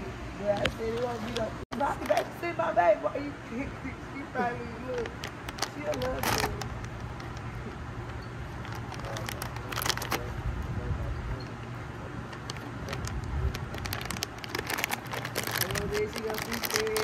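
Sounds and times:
low steady rumble: 0.0s - 17.0s
plastic snack bag crinkling: 4.8s - 7.6s, 8.5s - 10.3s, 12.4s - 17.0s.

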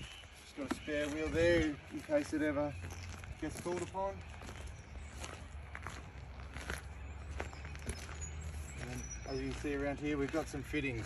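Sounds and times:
footsteps on dry grass: 0.0s - 11.0s.

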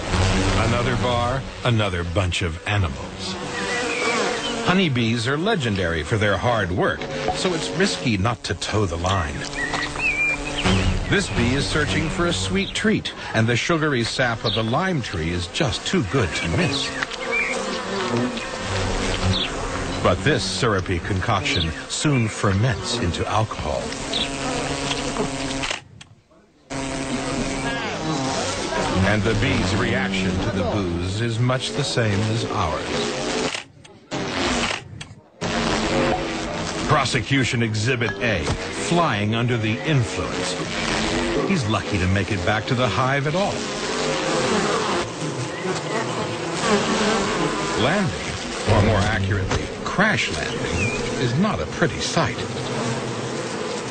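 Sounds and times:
honeybee buzzing: 0.0s - 26.0s, 26.7s - 53.9s.

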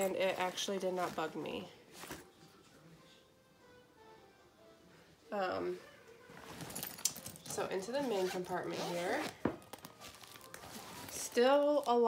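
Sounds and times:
fabric rustling: 0.0s - 2.4s, 6.3s - 12.0s
zipper being drawn: 7.8s - 9.4s, 10.0s - 11.4s.

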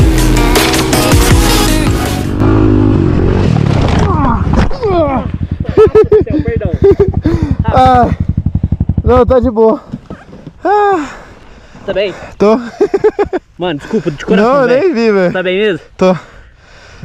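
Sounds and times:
background music: 0.0s - 2.6s
rapid even thudding: 3.5s - 10.6s
dirt bike engine idling: 4.2s - 16.6s.

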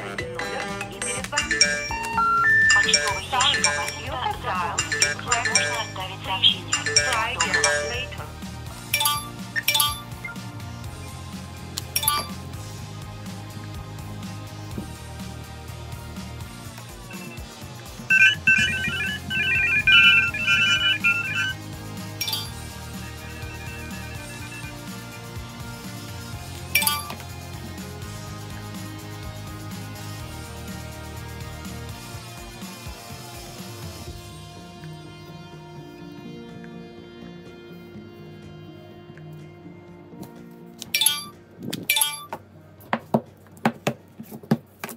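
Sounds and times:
background music: 0.0s - 44.9s
phone dial pad beeps: 1.0s - 8.3s, 12.0s - 12.3s, 17.1s - 17.5s, 18.1s - 21.6s, 22.2s - 22.6s, 26.8s - 27.2s.

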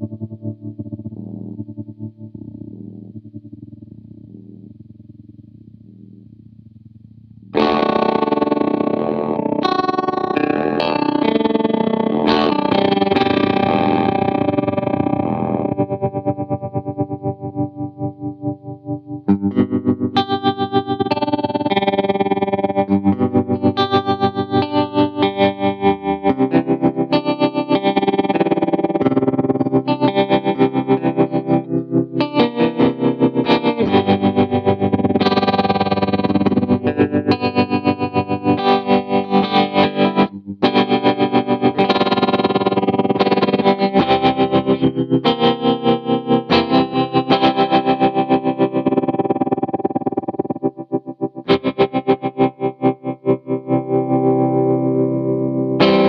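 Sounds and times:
electric guitar with tremolo pulse: 0.0s - 56.0s.

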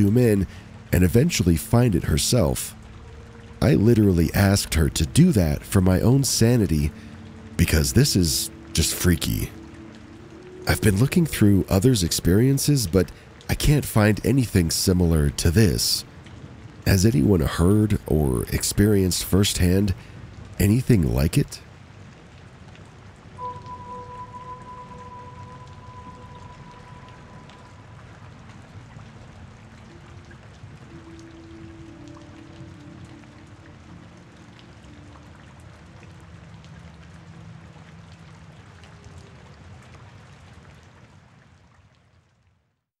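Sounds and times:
held tones of background music: 0.0s - 21.6s, 23.2s - 39.8s
steady rain: 0.0s - 42.9s.

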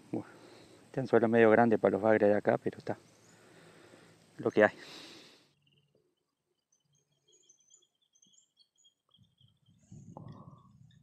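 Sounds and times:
faint high bird chirps: 2.4s - 11.0s.

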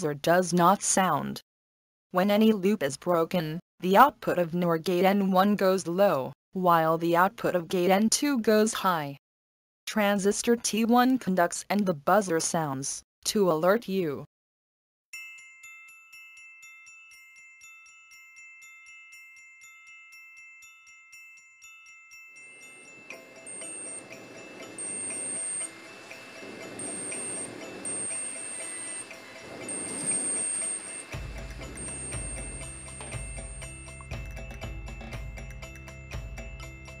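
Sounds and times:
chime-like background music: 15.2s - 37.0s
high-pitched piezo alarm buzzer: 22.4s - 34.2s
deep rhythmic beat: 31.1s - 37.0s.

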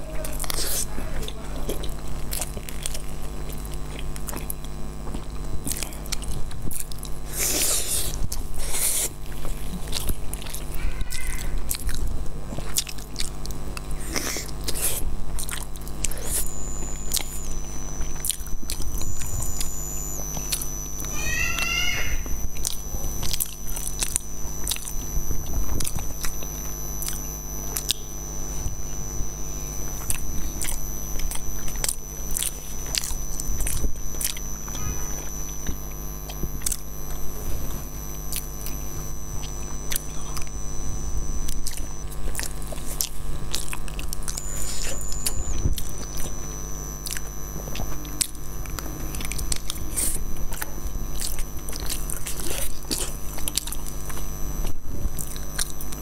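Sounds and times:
low hum: 0.0s - 56.0s
chewing and mouth clicks: 0.3s - 21.7s, 22.3s - 28.1s, 29.8s - 34.8s, 35.5s - 38.8s, 39.4s - 40.6s, 41.4s - 46.4s, 47.0s - 56.0s
faint high-pitched whine: 10.4s - 56.0s.

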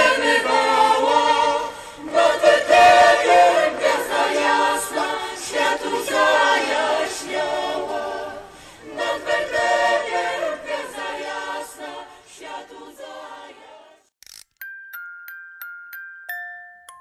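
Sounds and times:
mixed choir singing a cappella: 0.0s - 14.1s.

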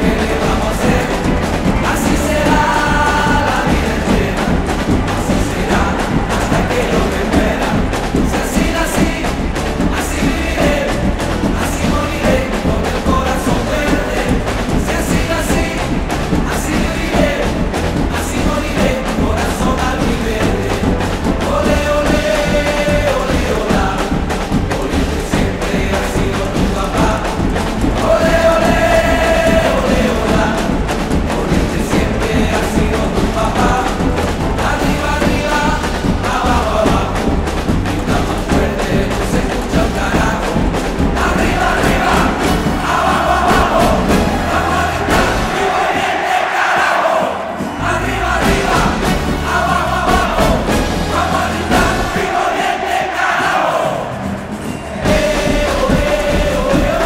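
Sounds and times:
live band playing: 0.0s - 46.2s, 47.4s - 57.0s
man singing lead: 0.0s - 54.1s, 54.9s - 57.0s
driving drum beat: 0.0s - 57.0s
stadium crowd chanting: 0.0s - 57.0s.

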